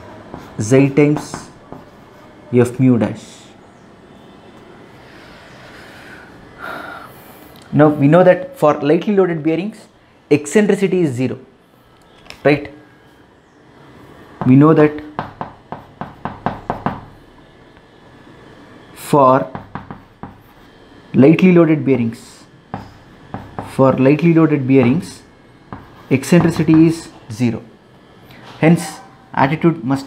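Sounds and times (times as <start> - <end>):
steady room hiss: 0.0 - 30.0
chalk tapping on chalkboard: 0.3 - 2.0, 15.1 - 17.2, 19.5 - 20.6, 22.7 - 23.8, 25.7 - 27.0
chalk scratching on blackboard: 19.5 - 20.8, 22.7 - 23.8.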